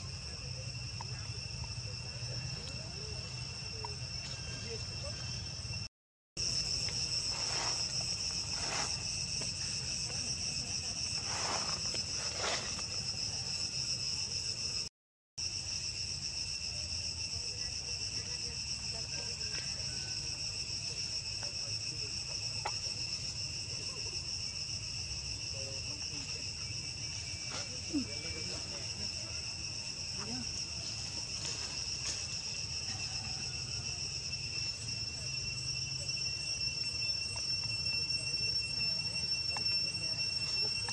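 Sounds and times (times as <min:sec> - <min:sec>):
insects droning: 0:00.0 - 0:40.9
short insect calls: 0:00.0 - 0:40.9.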